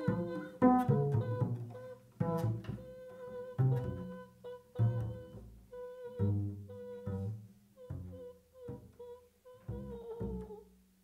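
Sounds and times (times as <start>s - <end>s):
double bass low notes: 0.0s - 10.7s
woman humming held notes: 0.0s - 10.7s.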